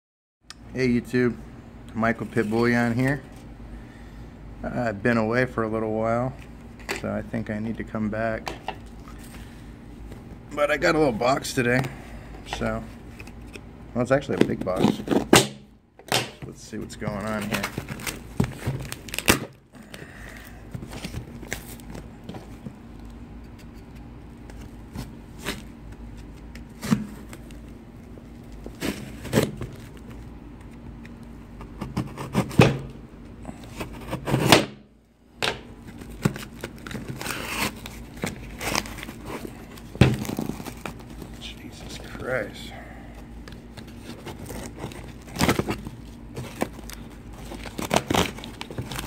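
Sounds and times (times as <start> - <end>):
tape and cardboard tearing: 17.4 - 20.0, 28.6 - 30.0, 31.6 - 33.0, 33.6 - 34.8, 35.9 - 41.3, 43.6 - 49.0.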